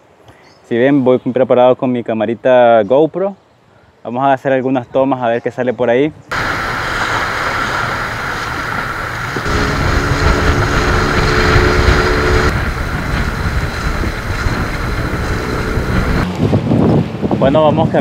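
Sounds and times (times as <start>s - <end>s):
boat motor droning: 6.3s - 16.2s
wind and water rushing: 6.3s - 17.4s.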